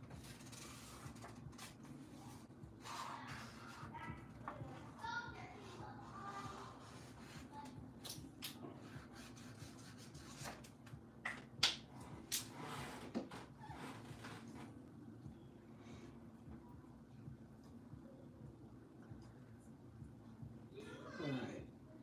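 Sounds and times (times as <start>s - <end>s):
marker strokes on paper: 5.6s - 7.7s, 8.7s - 10.6s.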